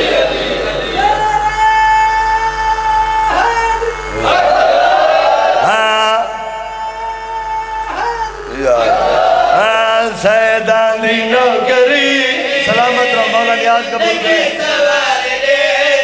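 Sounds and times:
man chanting in held notes: 5.6s - 14.6s.

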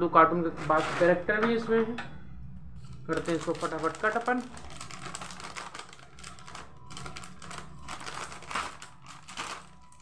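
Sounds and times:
scissors snipping plastic packet: 3.1s - 10.0s.

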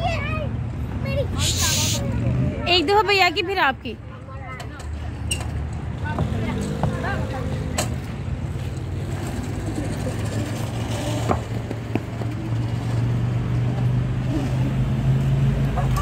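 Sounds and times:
traffic engine hum: 0.0s - 16.0s
faint voices: 1.2s - 8.1s.

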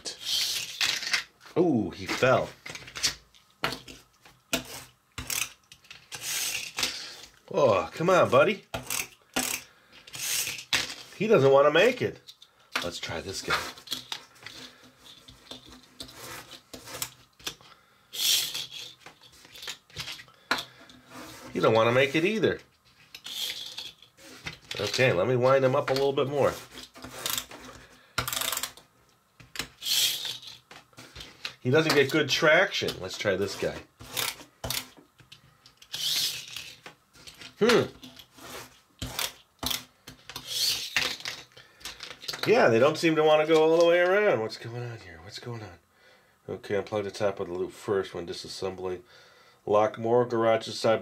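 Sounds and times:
plastic rubbing and rasping: 0.0s - 1.3s, 2.1s - 7.2s, 8.7s - 11.3s, 12.9s - 17.6s, 18.2s - 28.8s, 29.4s - 42.6s
toy car motor whirring: 0.2s - 1.1s, 4.7s - 6.8s, 8.8s - 10.7s, 18.1s - 19.7s, 23.1s - 25.0s, 29.8s - 30.6s, 35.8s - 36.8s, 40.4s - 41.3s
toy car spring winding clicks: 18.2s - 19.7s, 23.1s - 24.0s, 29.8s - 30.6s, 35.7s - 36.8s.

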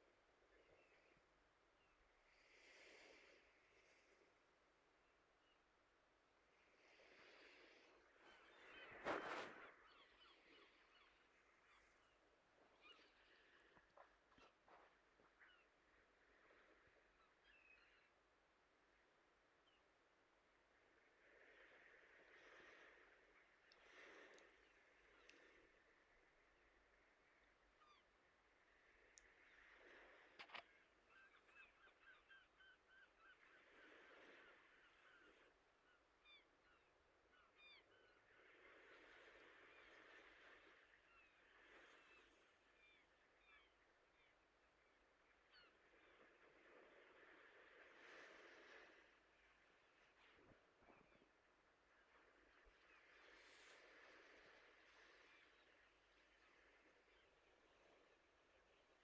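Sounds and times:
faint bird calls: 6.8s - 18.3s, 21.0s - 59.0s.

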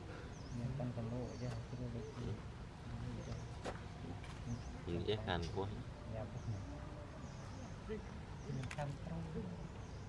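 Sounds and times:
bird chirping: 0.0s - 10.0s
voices talking: 0.0s - 10.0s.

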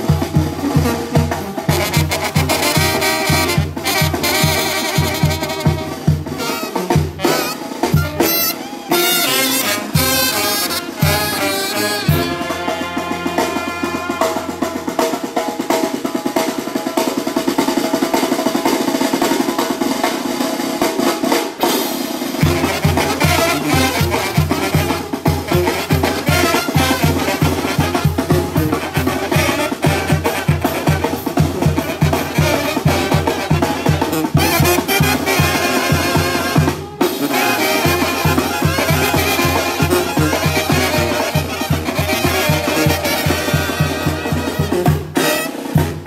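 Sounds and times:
brass band playing: 0.0s - 46.0s
rapid snare drumming: 0.0s - 46.0s.

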